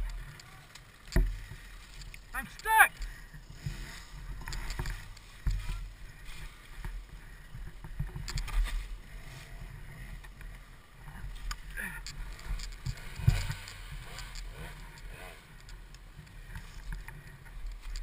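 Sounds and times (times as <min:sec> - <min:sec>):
knocks and thumps of dirt bike: 0:00.0 - 0:18.0
rustling leaves: 0:00.0 - 0:18.0.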